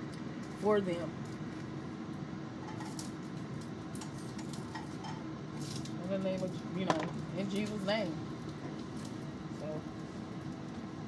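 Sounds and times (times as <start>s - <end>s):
kitchen hum and hiss: 0.0s - 11.0s.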